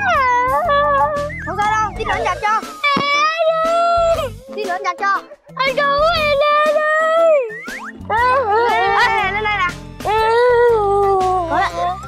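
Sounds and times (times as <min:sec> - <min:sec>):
child whining: 0:00.0 - 0:01.3, 0:08.1 - 0:09.4, 0:10.0 - 0:12.0
background music: 0:00.0 - 0:12.0.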